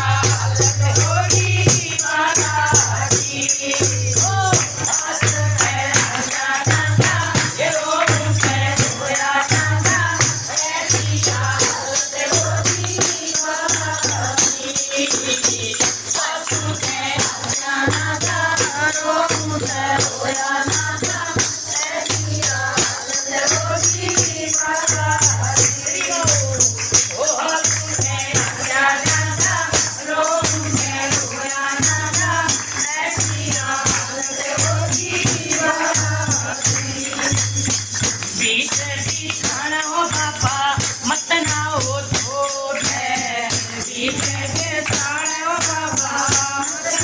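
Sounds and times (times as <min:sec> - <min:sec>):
hand drum beating: 0:00.0 - 0:14.7, 0:15.5 - 0:43.3
group singing devotional song: 0:00.0 - 0:47.0
tambourine jingling: 0:00.0 - 0:47.0.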